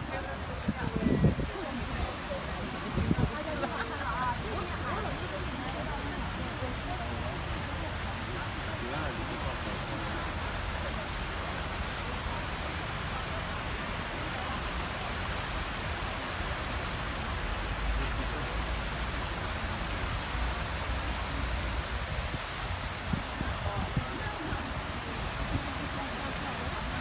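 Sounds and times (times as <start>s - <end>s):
fountain water splashing: 0.0s - 27.0s.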